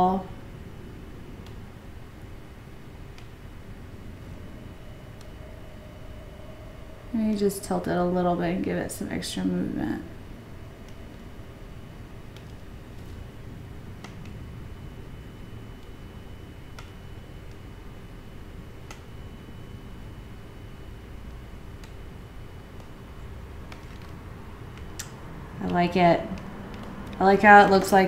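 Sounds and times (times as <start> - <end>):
faint constant tone: 0.0 - 28.0
low room hum: 0.0 - 28.0
light scattered clicks: 23.7 - 28.0.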